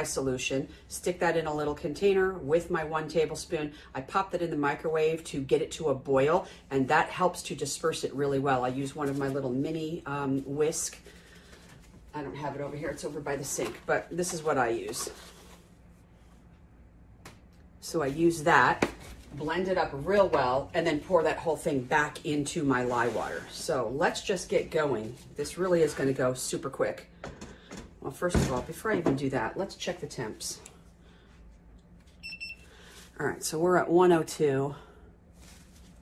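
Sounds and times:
person's voice: 12.2 - 15.1, 17.8 - 27.0
thermometer high beep: 32.2 - 32.6.

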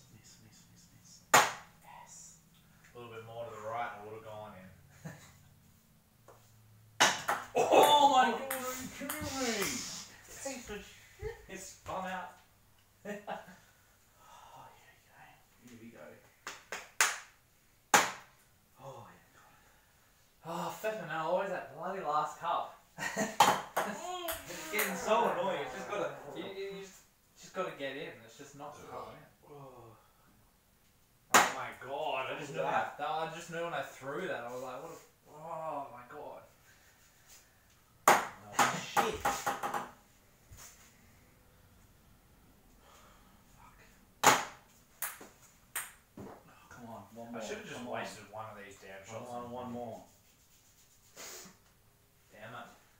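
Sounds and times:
men's voices: 7.5 - 11.0, 23.8 - 30.0.

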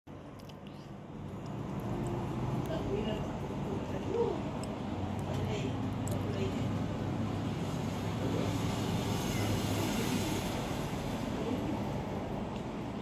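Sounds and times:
distant road traffic hum: 0.1 - 13.0.

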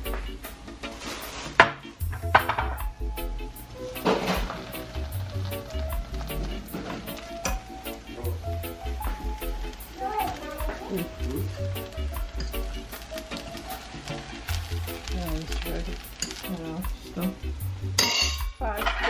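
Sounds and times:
pan sizzling: 0.0 - 19.0
glass lid clinking: 18.0 - 19.0.

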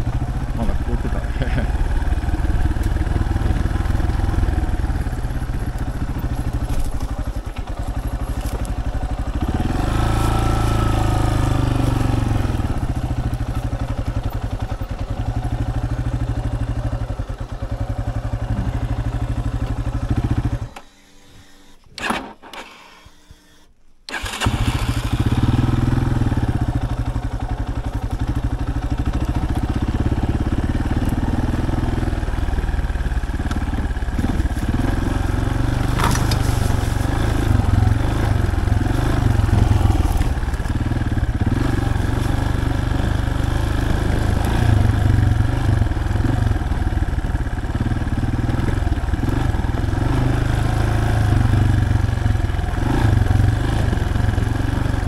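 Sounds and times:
motorcycle engine running: 0.0 - 20.8, 24.1 - 55.0.

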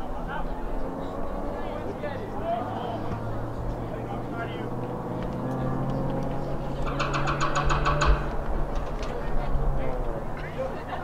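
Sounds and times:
motor engine humming: 0.5 - 11.0.

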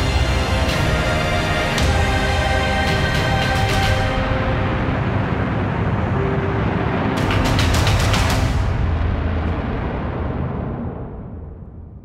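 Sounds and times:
low rumbling drone music: 0.0 - 12.0.

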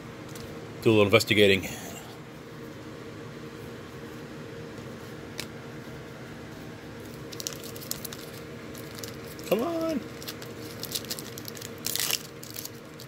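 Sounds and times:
faint room hum: 0.0 - 13.0
foil wrapper crinkling: 7.0 - 13.0.

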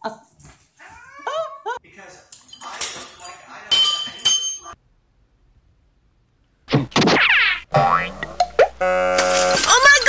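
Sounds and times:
cartoon boing sound effect: 6.7 - 8.7.

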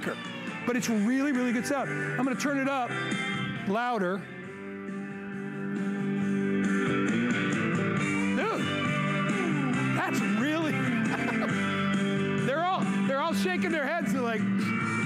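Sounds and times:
guitar music from speaker: 0.0 - 15.0.

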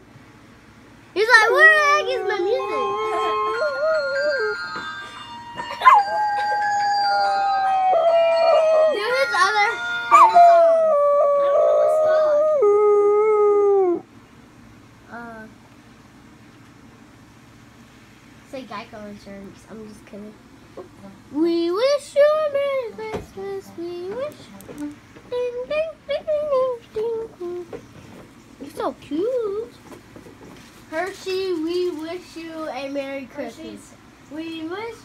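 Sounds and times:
dog howling: 1.4 - 14.1
high-pitched voice singing: 1.5 - 4.8
faint music: 18.4 - 29.8.

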